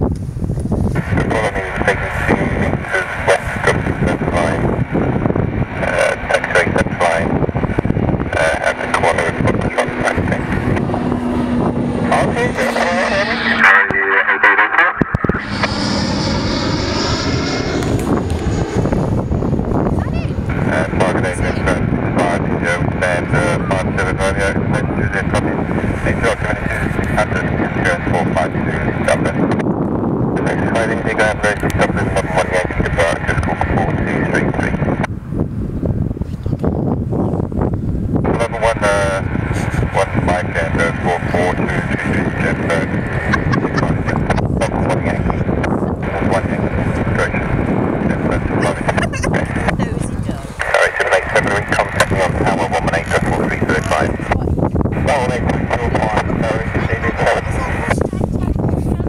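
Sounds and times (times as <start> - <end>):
steady outdoor rumble: 0.0 - 59.0
indistinct voices: 1.0 - 4.8, 5.7 - 7.4, 8.2 - 18.8, 19.8 - 29.6, 30.4 - 34.8, 38.2 - 59.0.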